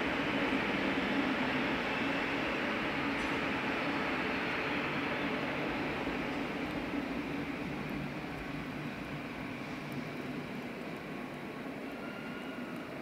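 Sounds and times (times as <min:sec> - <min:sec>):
train rumble and hiss: 0:00.0 - 0:13.0
faint high brake squeal: 0:11.8 - 0:12.9.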